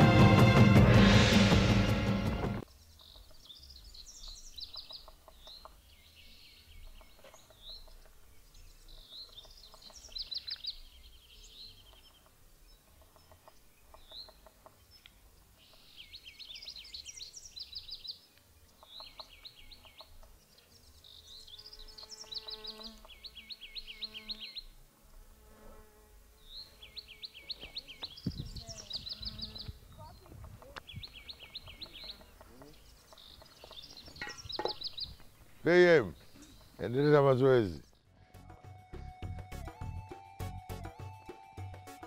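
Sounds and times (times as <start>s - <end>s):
fainter lower bird calls: 2.7s - 24.8s, 26.4s - 38.1s.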